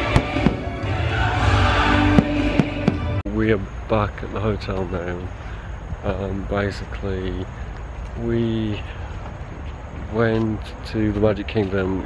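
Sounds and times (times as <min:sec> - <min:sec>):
sharp firework bangs: 0:00.0 - 0:00.8, 0:02.0 - 0:03.2
fireworks show music: 0:00.0 - 0:03.2.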